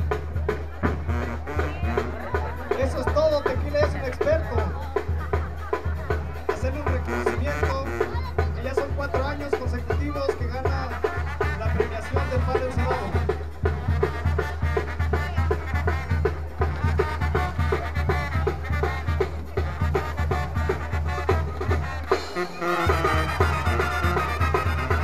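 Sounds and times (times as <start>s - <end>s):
brass band playing dance tune: 0.0s - 25.0s
drum beat: 0.0s - 25.0s
tuba bass line: 0.0s - 25.0s.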